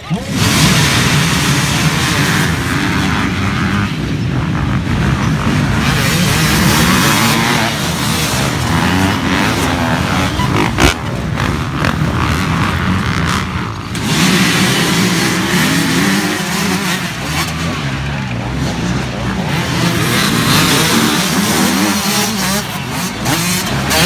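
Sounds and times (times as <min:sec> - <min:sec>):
dirt bikes revving: 0:00.0 - 0:24.0.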